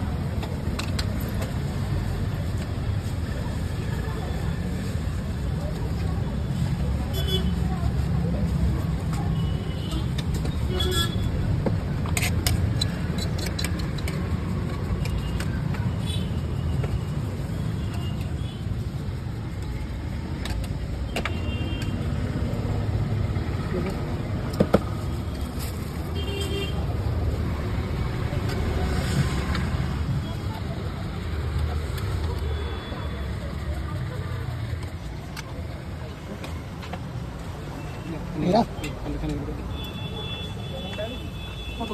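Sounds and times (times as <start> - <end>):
food stall clicks and clatter: 0.0 - 7.0, 7.6 - 40.0
traffic rumble: 0.0 - 41.9.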